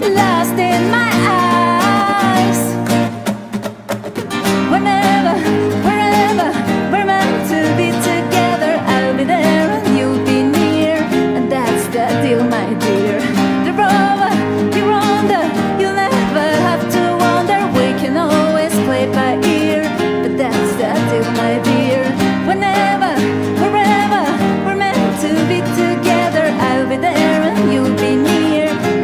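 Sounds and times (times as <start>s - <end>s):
woman singing: 0.0s - 3.1s, 4.4s - 29.0s
strummed classical guitar: 0.0s - 29.0s.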